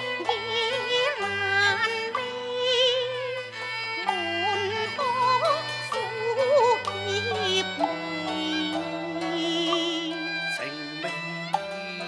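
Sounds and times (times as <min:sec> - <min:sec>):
instrumental accompaniment of low notes: 0:00.0 - 0:12.0
woman singing opera with vibrato: 0:00.0 - 0:12.0.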